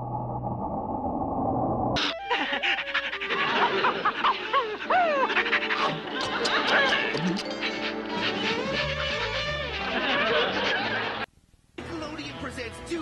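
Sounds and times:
cartoon dog panting and vocalizing: 2.0s - 9.9s
background music: 2.0s - 11.2s, 11.8s - 13.0s.

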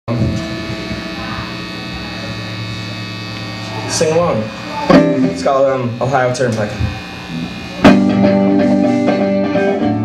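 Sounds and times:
amplifier electrical hum and buzz: 0.1s - 10.0s.

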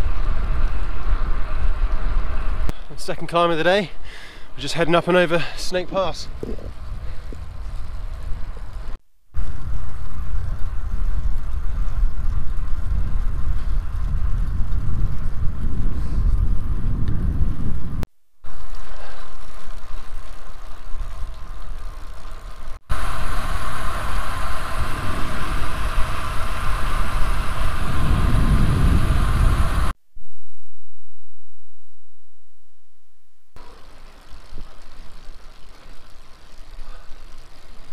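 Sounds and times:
wind buffeting microphone: 6.0s - 18.1s, 22.9s - 30.0s
tyre noise on tarmac: 6.1s - 29.9s, 33.6s - 37.9s.

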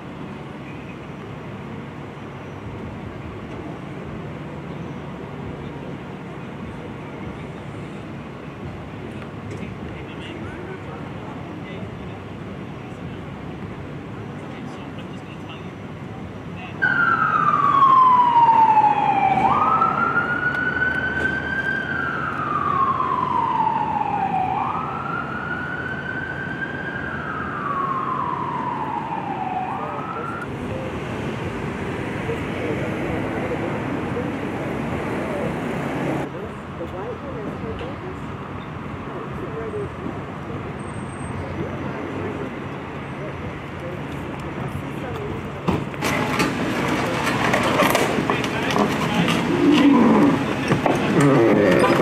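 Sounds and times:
siren wailing: 16.8s - 30.5s.

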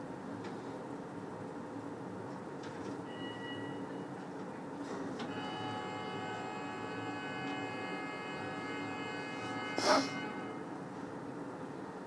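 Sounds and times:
lift machinery humming: 5.2s - 11.4s
high multi-tone whine: 5.3s - 11.0s.

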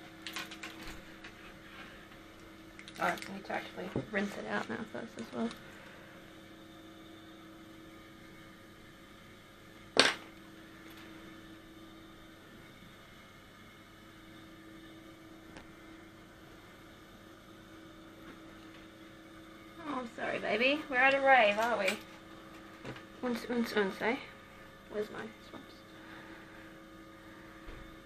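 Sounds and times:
low electrical hum: 0.0s - 28.0s.

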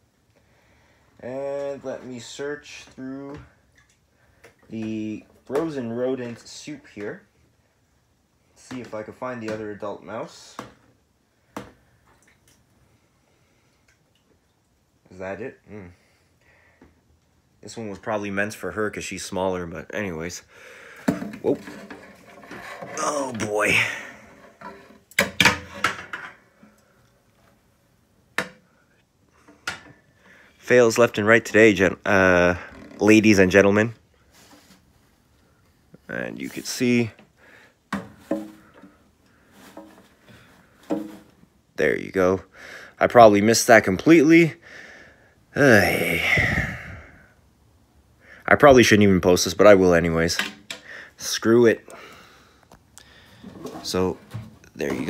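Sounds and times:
man murmuring and exclaiming: 22.9s - 24.3s, 45.5s - 47.2s.

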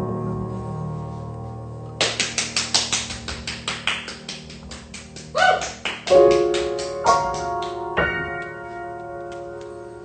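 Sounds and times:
loud sustained piano chord: 0.0s - 2.1s, 6.1s - 10.0s.

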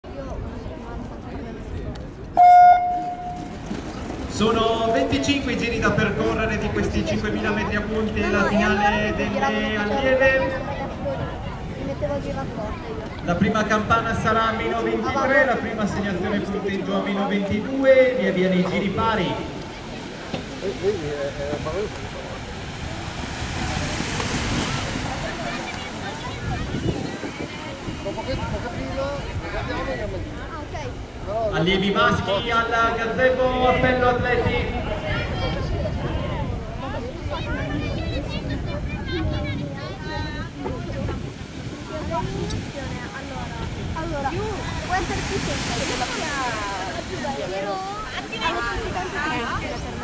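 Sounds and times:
wind rumbling on microphone: 0.0s - 17.7s, 18.6s - 50.0s
faint voices: 0.0s - 50.0s
race start horn tone: 2.4s - 3.5s.

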